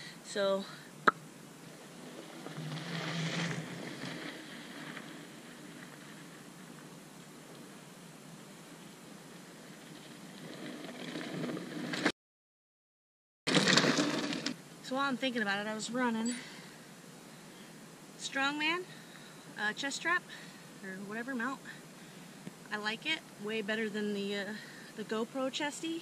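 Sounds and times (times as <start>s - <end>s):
outdoor noise: 0.0s - 12.2s, 13.5s - 26.0s
mountain bike on dirt trail: 1.6s - 12.1s, 13.5s - 26.0s.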